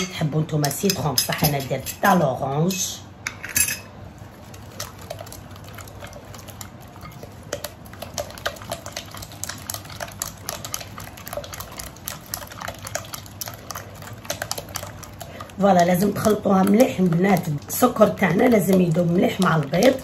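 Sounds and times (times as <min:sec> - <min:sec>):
whisk beating eggs in glass bowl: 0:04.2 - 0:20.0.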